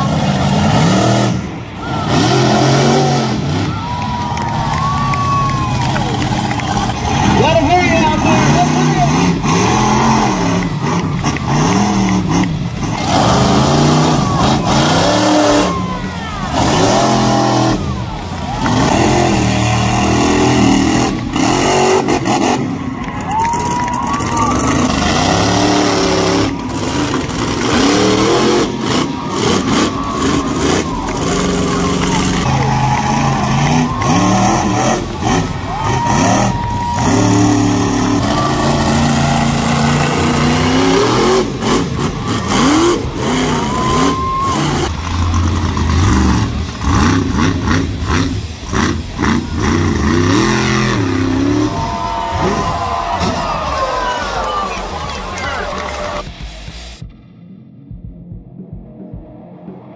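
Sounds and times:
monster truck engines revving: 0.0 - 57.0.

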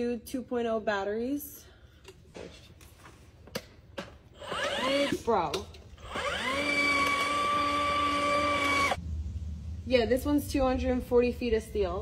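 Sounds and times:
motor whining: 4.3 - 5.3, 6.0 - 9.0.

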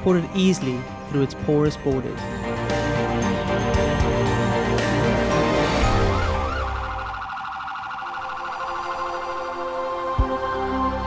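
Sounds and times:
background music: 0.0 - 11.0
police siren wailing: 4.7 - 10.4.

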